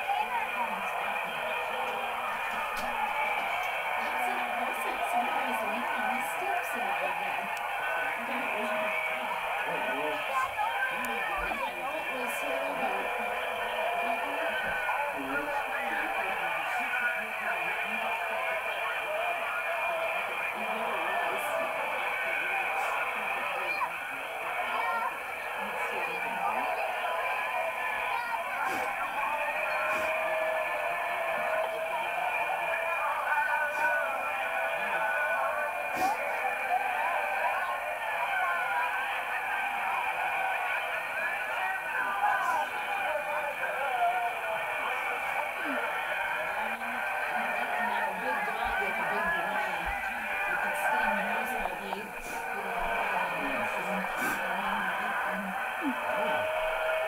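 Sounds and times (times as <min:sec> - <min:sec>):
voices through small tv speaker: 0:00.0 - 0:57.0.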